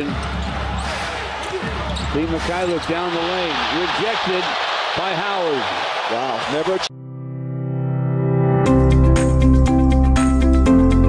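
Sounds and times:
arena crowd noise: 0.0 - 6.9.

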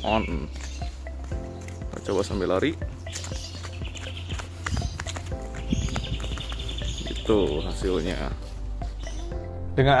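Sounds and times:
background music with bass: 0.0 - 10.0
running footsteps on brick: 0.5 - 9.0.

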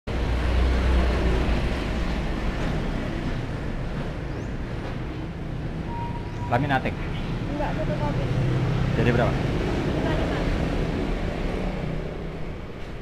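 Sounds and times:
road traffic noise: 0.1 - 13.0
vehicle passing rumble: 0.1 - 13.0.

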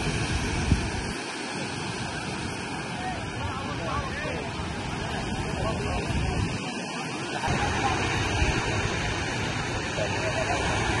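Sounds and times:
steady outdoor rushing noise: 0.0 - 11.0.

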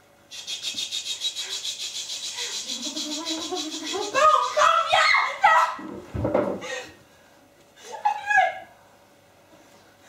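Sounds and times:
person crying out in anguish: 2.7 - 5.8.

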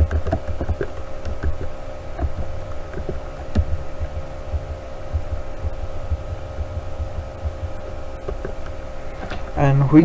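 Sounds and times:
electrical hum: 0.0 - 10.0
low thuds: 1.4 - 9.6.

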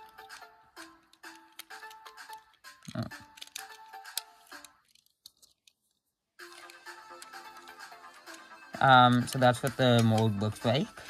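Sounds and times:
background music with steady beat: 0.0 - 4.8, 6.4 - 11.0.

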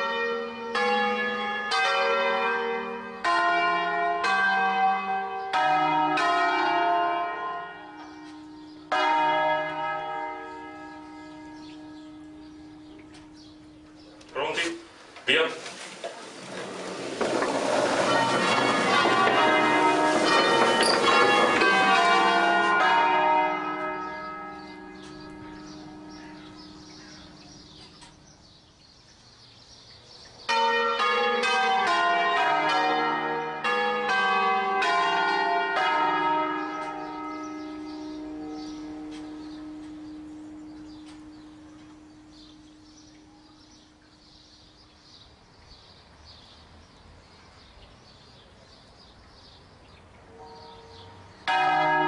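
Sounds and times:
church bells ringing: 0.0 - 14.8, 16.4 - 28.6, 30.1 - 45.2, 50.3 - 52.0
low bell hum: 10.4 - 14.2, 37.5 - 44.4.

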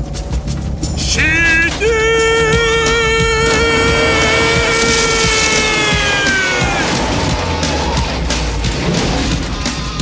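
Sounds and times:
off-road vehicle rumbling and jolting: 0.0 - 10.0
man singing a long high note: 1.1 - 6.6.

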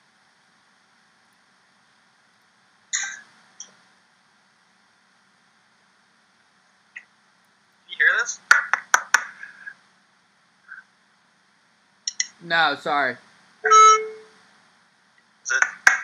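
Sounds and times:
sharp clicks: 12.0 - 12.4, 15.5 - 16.0.

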